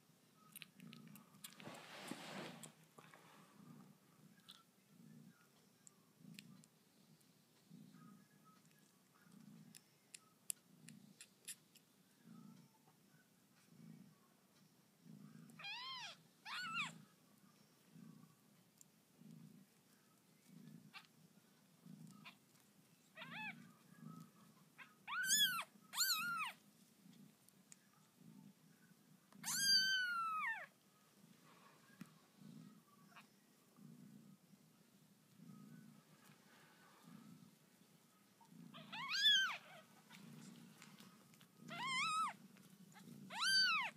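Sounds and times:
kittens mewing: 0:29.4 - 0:30.7, 0:38.6 - 0:39.9, 0:41.7 - 0:43.9.

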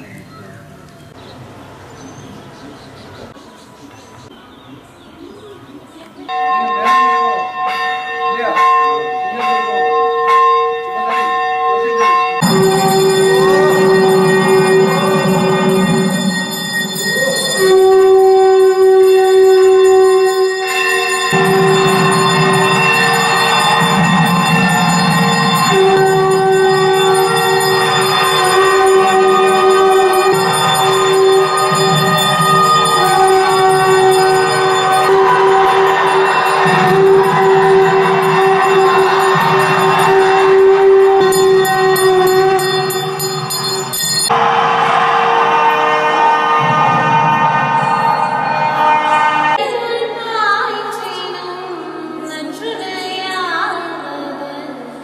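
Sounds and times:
bells ringing: 0:06.3 - 0:49.8
devotional music with drone: 0:10.9 - 0:50.1.

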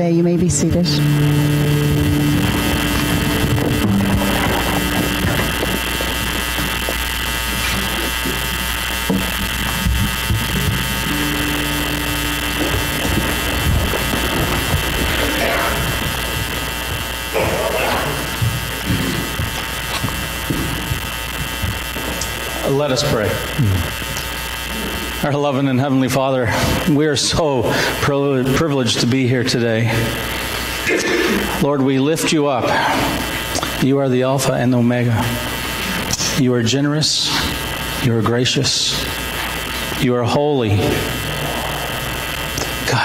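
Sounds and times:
steady electrical hum: 0:00.0 - 0:43.0.

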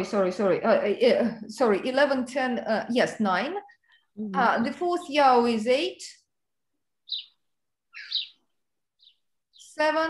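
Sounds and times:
small bird chirping: 0:06.2 - 0:10.0.

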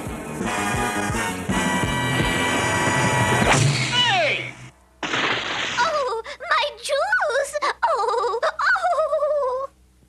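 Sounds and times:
brass swing music: 0:00.0 - 0:03.8.

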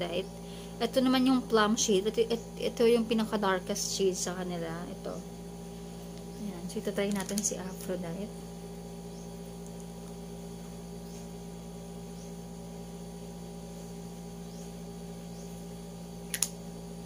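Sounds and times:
low electrical hum: 0:00.0 - 0:17.0
sharp double click: 0:16.3 - 0:16.6.

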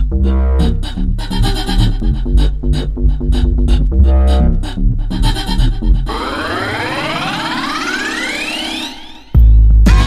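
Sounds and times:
rising synthesizer sweep: 0:06.0 - 0:09.4.

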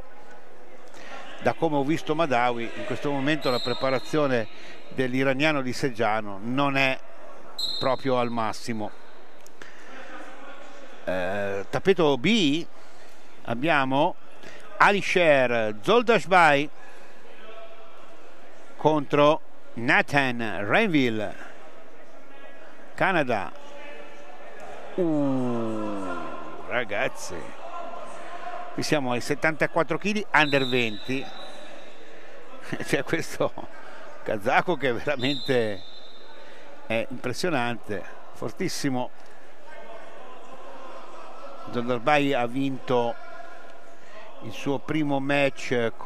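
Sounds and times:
indoor hall hum and murmur: 0:00.0 - 0:46.0
man commentating: 0:25.0 - 0:27.7.

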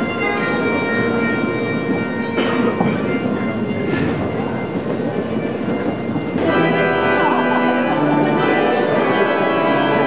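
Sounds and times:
bagpipes playing: 0:00.0 - 0:10.0.

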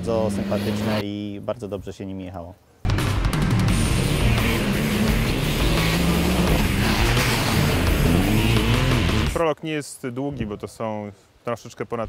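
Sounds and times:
rally car engines revving: 0:00.0 - 0:01.0, 0:03.5 - 0:09.4
background music: 0:02.9 - 0:09.4.

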